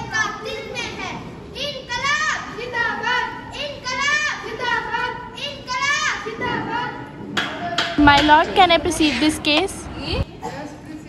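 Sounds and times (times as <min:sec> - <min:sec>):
crowd background: 0:00.0 - 0:11.0
boys shouting a slogan: 0:01.6 - 0:08.0
sharp knocks: 0:07.3 - 0:08.5.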